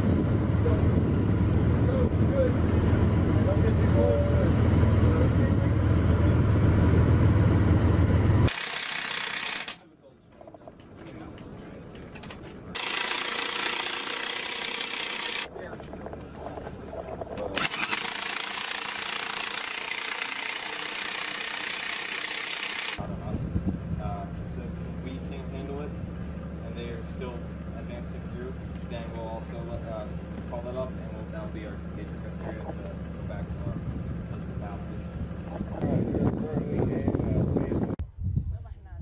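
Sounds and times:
heavy vehicle engine rumble: 0.0s - 8.5s, 23.0s - 38.0s
outdoor noise and hiss: 8.4s - 35.9s.

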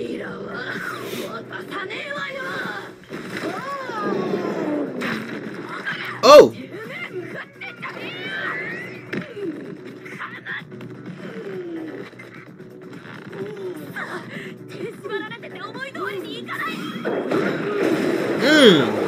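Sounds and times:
people talking: 6.2s - 6.6s, 18.4s - 19.0s
background music: 6.2s - 7.6s, 18.4s - 19.0s.

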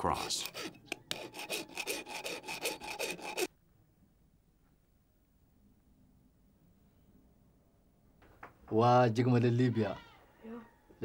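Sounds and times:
hand file rasping on metal: 0.0s - 3.5s.

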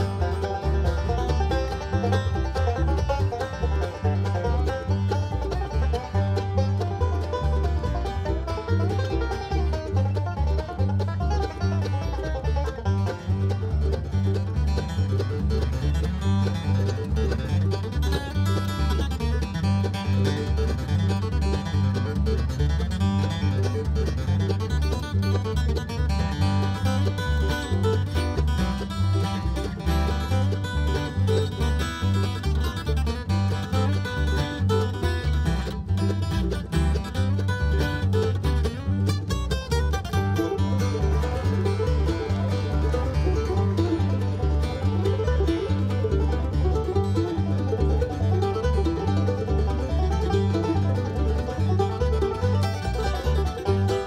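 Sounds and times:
acoustic guitar: 0.0s - 54.0s
banjo picking: 0.0s - 54.0s
mandolin: 0.0s - 54.0s
upright bass steady beat: 0.0s - 54.0s.

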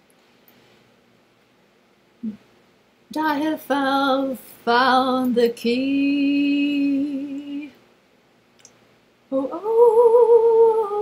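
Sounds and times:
woman humming: 2.2s - 2.4s
woman singing unaccompanied: 3.1s - 7.8s, 9.3s - 11.0s.

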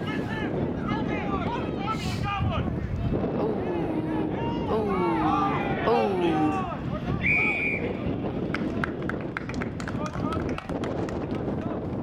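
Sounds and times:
scattered voices: 0.0s - 7.2s.

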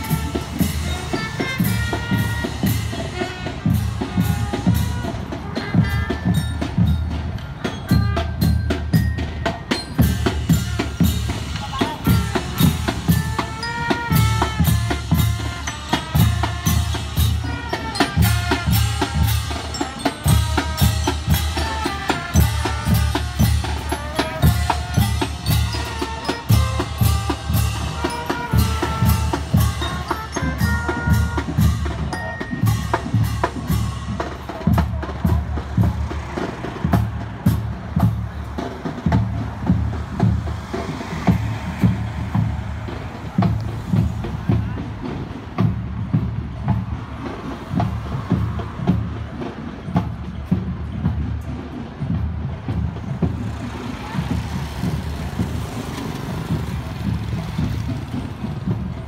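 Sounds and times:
brass horns melody: 0.0s - 6.9s, 7.8s - 8.8s, 10.0s - 35.1s
marching drums: 0.0s - 59.0s.

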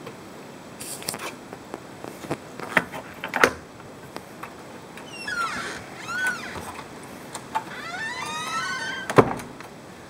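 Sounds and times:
door hinge creaking: 5.0s - 6.9s, 7.5s - 9.5s.

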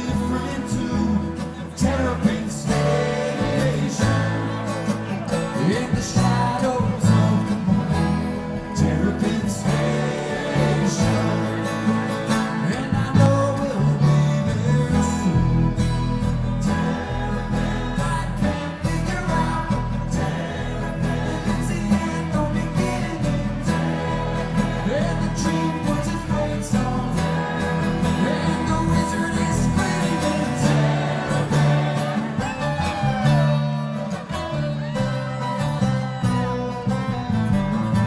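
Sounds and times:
acoustic guitar: 0.0s - 38.0s
banjo: 0.0s - 38.0s
upright bass: 0.0s - 38.0s.

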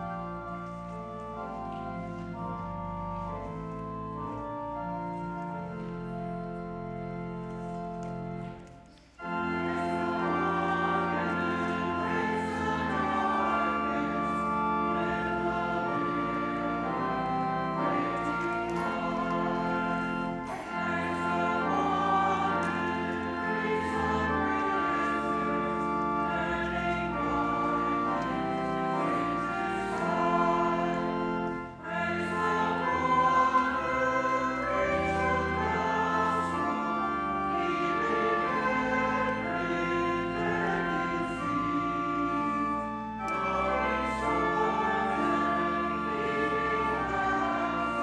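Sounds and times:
church organ playing chords: 0.0s - 48.0s
group singing a hymn: 9.2s - 48.0s.

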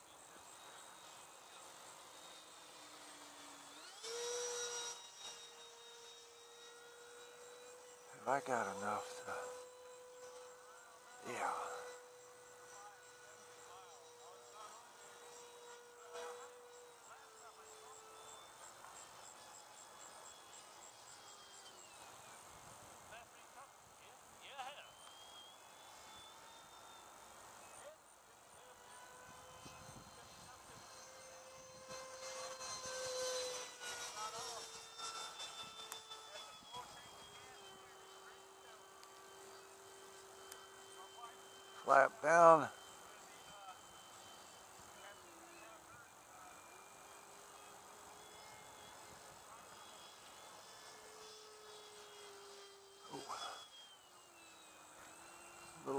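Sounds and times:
electric ducted fan whining: 0.0s - 55.9s.

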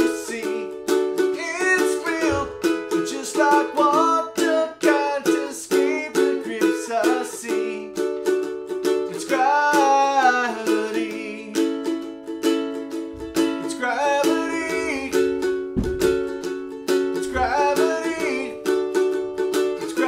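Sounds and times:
man singing: 0.0s - 8.1s, 9.1s - 12.1s, 13.2s - 15.7s, 17.1s - 19.0s, 19.6s - 20.0s
ukulele strumming: 0.0s - 20.0s.

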